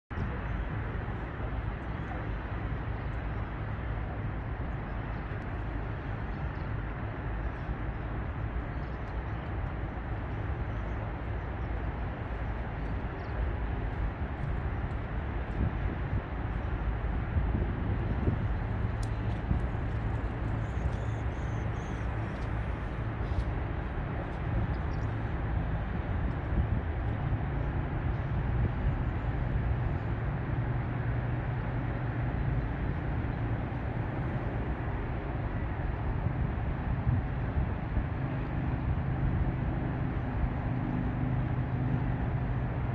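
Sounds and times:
distant road traffic rumble: 0:00.1 - 0:42.9.

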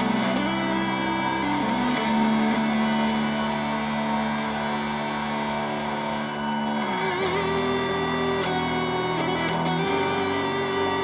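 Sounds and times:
electric guitar drone: 0:00.0 - 0:11.0.

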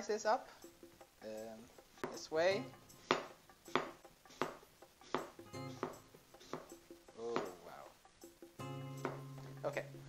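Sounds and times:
knife tapping cutting board: 0:02.0 - 0:02.3, 0:03.0 - 0:07.6.

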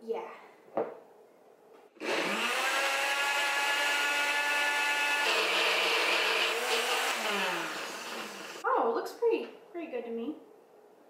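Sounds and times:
blender motor whining: 0:02.0 - 0:08.6.

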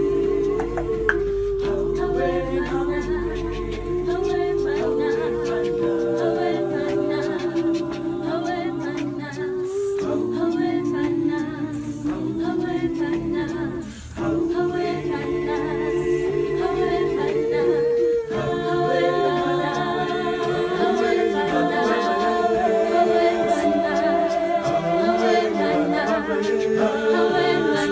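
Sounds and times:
vocal group singing in harmony: 0:00.0 - 0:27.9.

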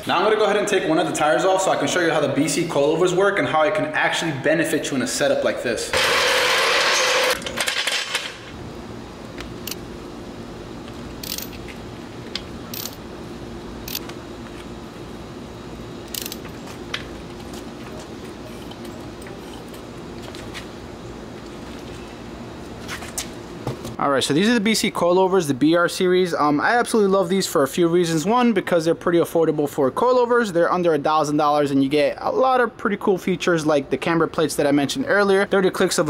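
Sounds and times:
steady low hum: 0:08.2 - 0:36.0.

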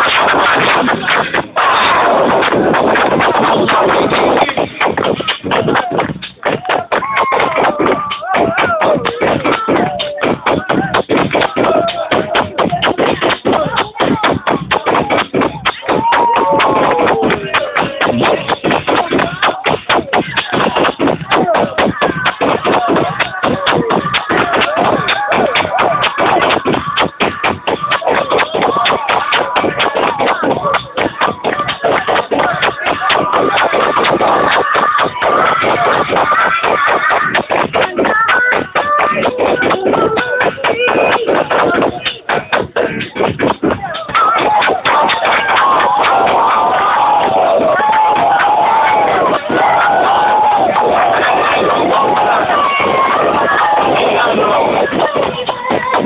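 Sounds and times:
crowd noise: 0:00.0 - 0:56.0
distorted loud dance music: 0:00.0 - 0:56.0.

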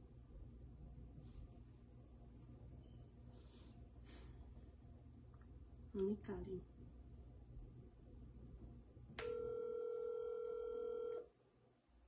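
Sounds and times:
phone ringback tone: 0:09.2 - 0:11.3.

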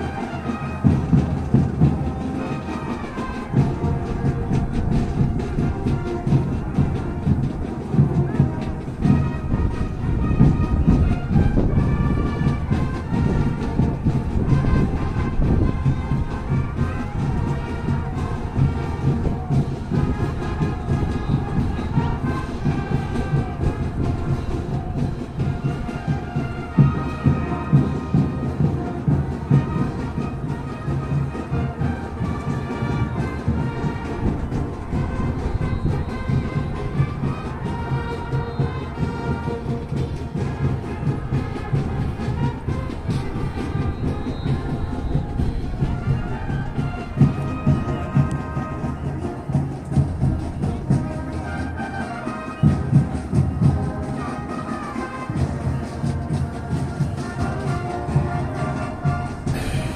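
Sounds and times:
band music in a stadium: 0:00.0 - 0:59.9.

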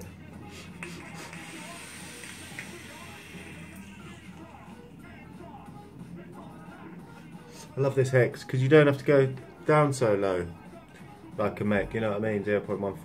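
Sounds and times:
background music: 0:00.0 - 0:13.0
vape coil hissing: 0:00.4 - 0:04.9.

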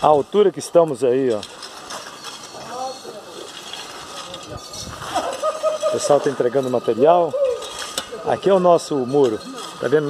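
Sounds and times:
building site background noise: 0:00.0 - 0:10.0.

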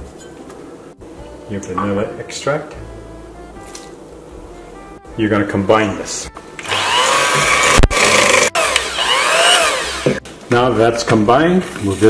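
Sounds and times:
electric hand mixer running: 0:06.6 - 0:10.2.

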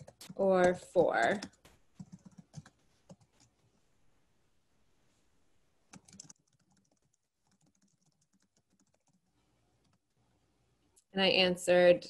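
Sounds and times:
typing on computer keyboard: 0:00.0 - 0:03.5, 0:05.9 - 0:10.1.

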